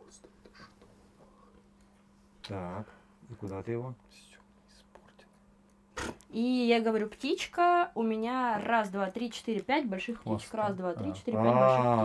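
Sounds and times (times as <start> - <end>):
faint whispering: 0.0 - 1.6, 4.1 - 5.4
low electrical hum: 0.0 - 12.0.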